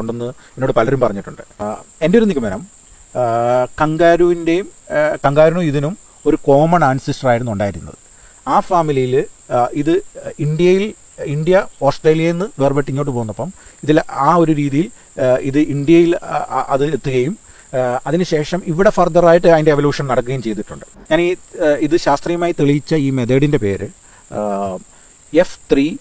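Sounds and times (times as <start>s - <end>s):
crickets chirring: 0.0s - 26.0s
man talking: 0.0s - 26.0s.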